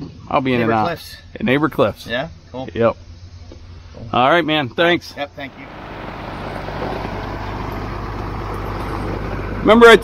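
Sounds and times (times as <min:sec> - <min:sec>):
diesel truck engine droning: 0:05.3 - 0:10.0.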